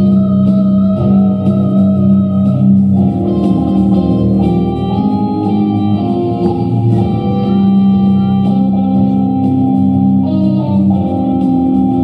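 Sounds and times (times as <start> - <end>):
instrumental music with held notes: 0.0 - 12.0
steady low drone: 0.0 - 12.0.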